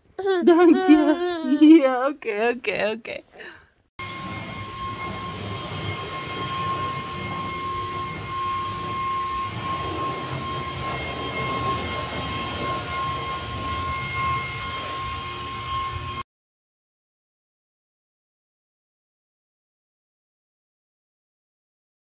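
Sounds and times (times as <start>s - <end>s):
leaf blower whine and air rush: 4.0s - 16.2s.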